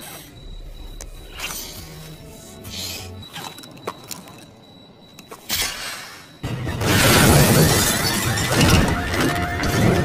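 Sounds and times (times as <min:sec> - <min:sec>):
glass shattering: 0:06.7 - 0:10.0.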